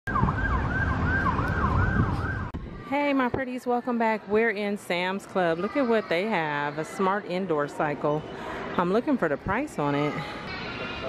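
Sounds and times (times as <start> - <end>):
siren in fast yelp: 0.1 - 2.5.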